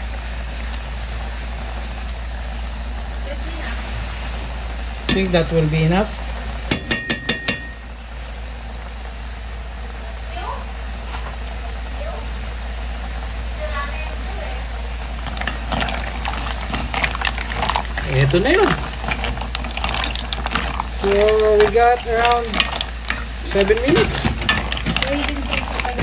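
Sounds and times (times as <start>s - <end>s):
spoon stirring mussel shells: 14.9s - 26.0s.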